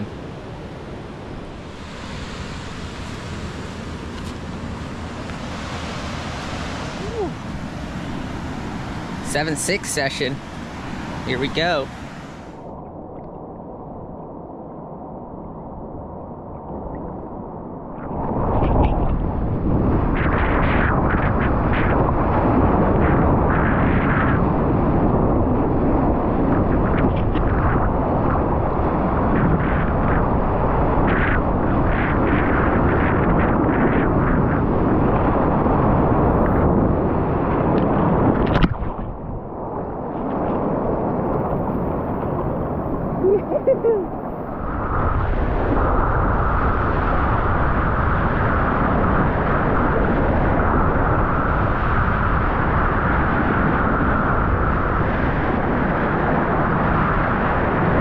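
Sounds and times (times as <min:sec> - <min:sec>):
water rushing: 0:00.0 - 0:12.6
wind buffeting: 0:00.0 - 0:58.0.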